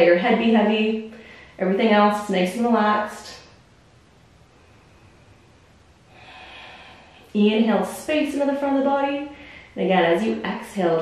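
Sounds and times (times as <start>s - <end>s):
woman breathing in: 1.1s - 1.6s, 6.1s - 7.3s, 9.3s - 9.8s.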